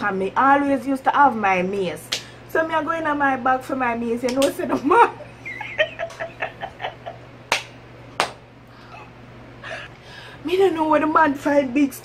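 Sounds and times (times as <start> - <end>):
hand clap: 4.3 - 4.6, 7.5 - 8.4
woman laughing softly: 5.2 - 7.3.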